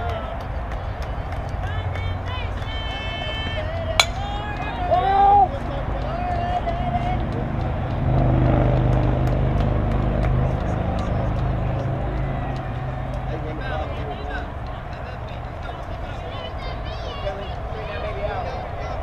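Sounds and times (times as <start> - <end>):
bat hitting ball crack: 4.0 - 4.7
people shouting: 4.0 - 7.1.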